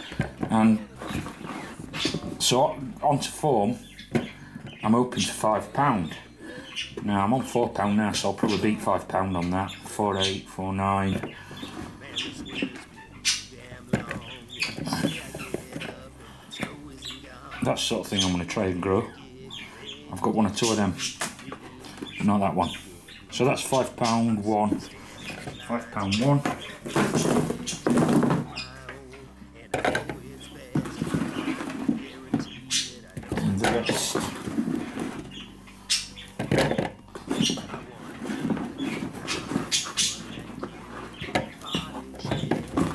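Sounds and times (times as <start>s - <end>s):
birds chirping: 0.0s - 42.9s.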